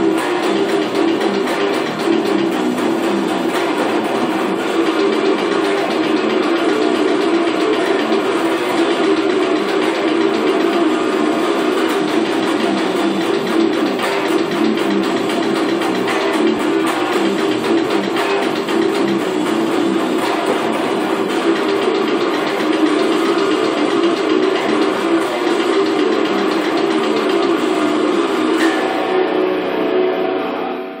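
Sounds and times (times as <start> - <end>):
distorted electric guitar riff: 0.0 - 31.0.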